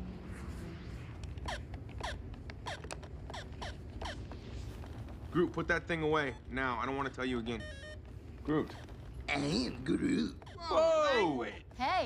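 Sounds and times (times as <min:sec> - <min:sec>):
video game bleeps: 0:05.9 - 0:08.8, 0:10.2 - 0:11.4.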